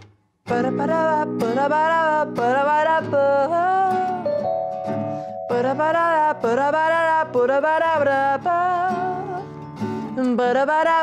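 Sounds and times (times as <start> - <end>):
acoustic guitar strumming: 0.0 - 10.6
person singing: 0.5 - 9.4, 10.2 - 11.0.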